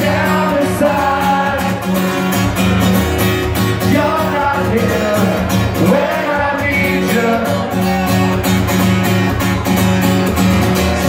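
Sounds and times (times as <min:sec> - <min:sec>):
man singing: 0:00.0 - 0:02.3, 0:03.7 - 0:08.4
acoustic guitar strumming: 0:00.0 - 0:11.0.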